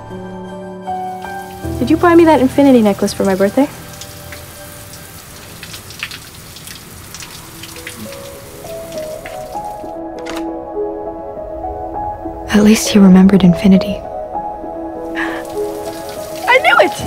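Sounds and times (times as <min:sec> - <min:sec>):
soft sustained music notes: 0:00.0 - 0:06.0, 0:06.9 - 0:17.0
shower running: 0:01.0 - 0:10.0, 0:15.1 - 0:17.0
water dripping: 0:01.0 - 0:10.0, 0:15.1 - 0:17.0.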